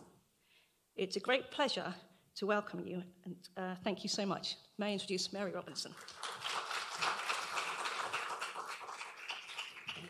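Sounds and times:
audience applauding: 0:05.9 - 0:10.0.

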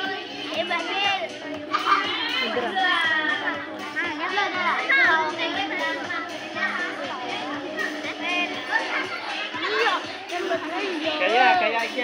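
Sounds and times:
children calling and chattering: 0:00.0 - 0:12.0
music playing: 0:00.0 - 0:12.0.

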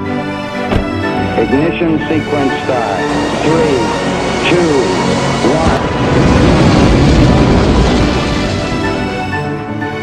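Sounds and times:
music: 0:00.0 - 0:10.0
rocket engine rumble: 0:02.0 - 0:09.6.

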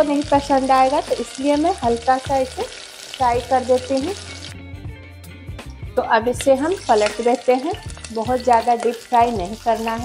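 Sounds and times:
oil sizzling and crackling: 0:00.0 - 0:04.7, 0:06.0 - 0:10.0
soft background music: 0:00.0 - 0:10.0.

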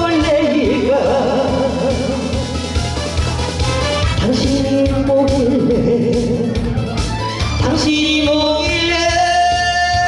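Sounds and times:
woman singing into a microphone: 0:00.0 - 0:02.5, 0:04.2 - 0:06.8, 0:07.6 - 0:10.0
instrumental accompaniment with beat: 0:00.0 - 0:10.0.

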